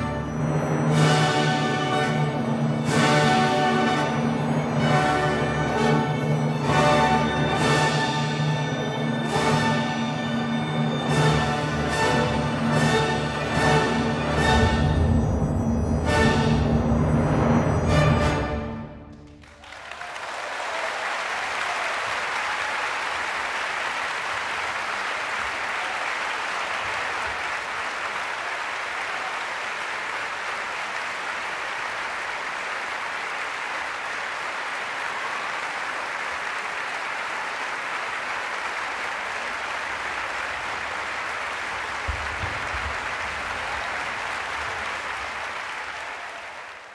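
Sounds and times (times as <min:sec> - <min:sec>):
audience applauding: 0:19.1 - 0:46.9.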